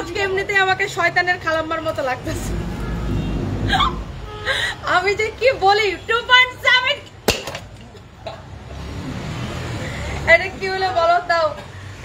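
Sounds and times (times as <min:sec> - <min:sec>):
woman gasping: 0:03.7 - 0:04.9
woman laughing breathily: 0:03.7 - 0:04.9.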